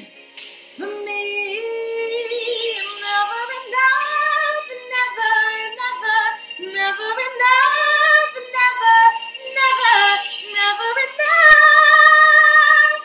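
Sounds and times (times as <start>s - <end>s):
woman singing wordless ornamented notes: 0.7s - 13.0s.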